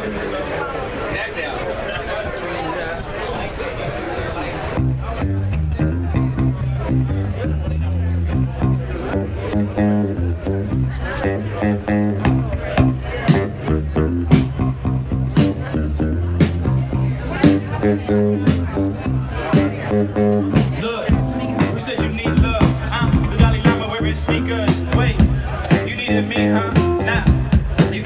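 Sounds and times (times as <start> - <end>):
crowd chatter: 0.0 - 28.0
bass guitar line: 4.7 - 28.0
live band playing: 5.1 - 28.0.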